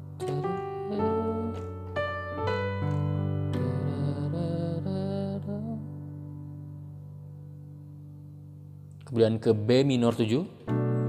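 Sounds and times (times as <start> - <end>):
piano chord: 0.0 - 8.9, 10.2 - 11.0.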